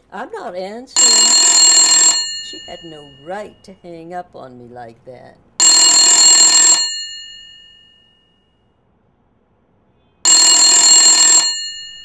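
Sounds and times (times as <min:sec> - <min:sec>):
telephone bell ringing: 0:01.0 - 0:03.6, 0:05.6 - 0:08.6, 0:10.2 - 0:12.0.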